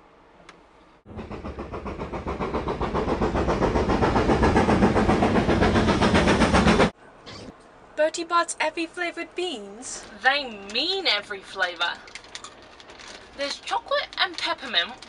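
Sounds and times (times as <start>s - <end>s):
steam locomotive chuffing: 1.0s - 7.0s.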